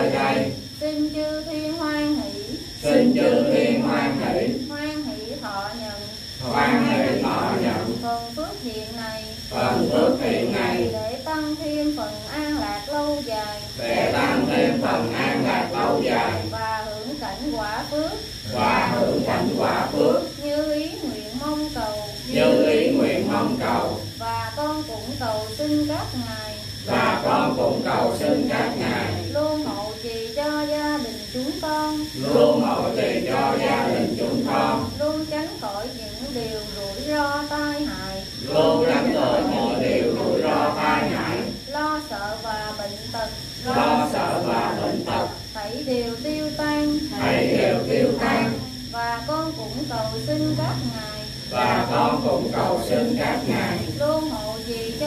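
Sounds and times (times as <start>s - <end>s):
voices chanting together: 0.0s - 0.9s, 2.2s - 4.7s, 6.0s - 8.4s, 9.3s - 11.2s, 13.3s - 16.8s, 18.3s - 20.5s, 21.6s - 24.2s, 26.5s - 30.0s, 31.0s - 35.4s, 37.7s - 41.8s, 43.0s - 45.8s, 46.7s - 48.8s, 50.4s - 55.0s
woman chanting: 0.0s - 55.0s.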